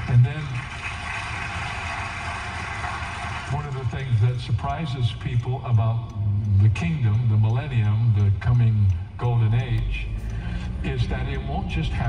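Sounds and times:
car engine idling: 3.6 - 12.0.

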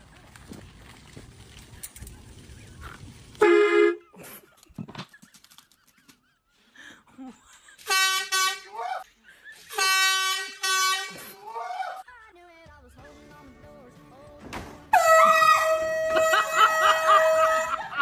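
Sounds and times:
air horn blasts: 3.4 - 4.0, 7.8 - 8.8, 9.7 - 11.4, 14.9 - 17.9.

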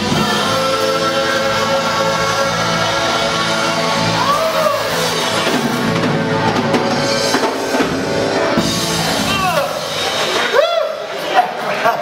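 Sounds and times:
church praise band: 0.0 - 12.0.

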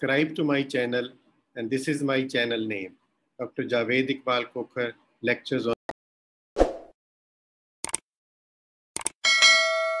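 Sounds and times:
bell chime ringing: 9.2 - 10.0.

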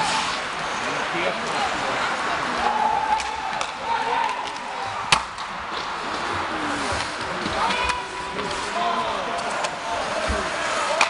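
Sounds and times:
arena crowd murmur: 0.0 - 11.0.

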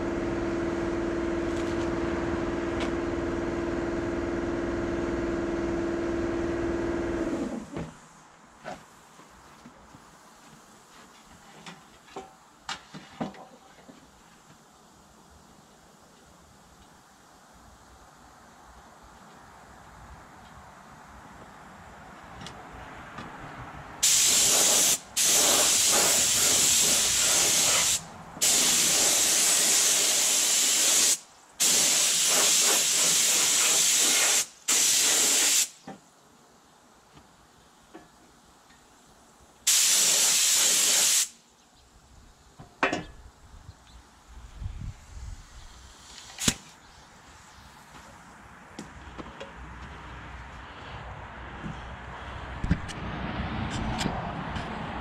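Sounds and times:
spray paint hissing: 24.0 - 35.8, 39.7 - 41.4.

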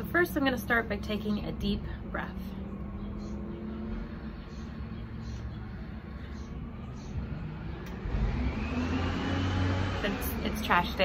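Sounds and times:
garbage truck engine hum: 1.4 - 11.0.

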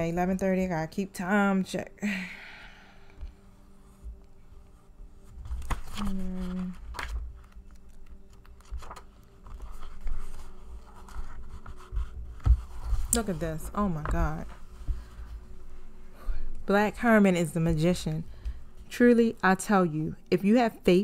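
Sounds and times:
paper pages turning: 5.2 - 15.2
person humming: 6.0 - 6.8.

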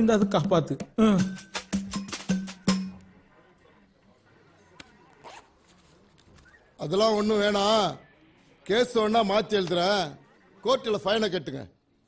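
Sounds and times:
zipper being pulled: 5.1 - 5.7.

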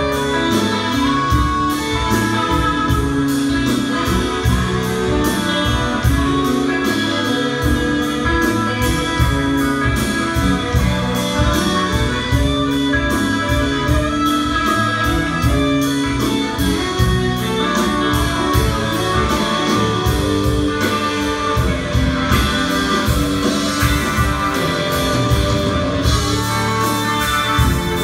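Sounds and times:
bass guitar: 0.0 - 28.0
blues harmonica: 0.0 - 28.0
drums with cymbal beat: 0.0 - 28.0
electric guitars: 0.0 - 28.0.

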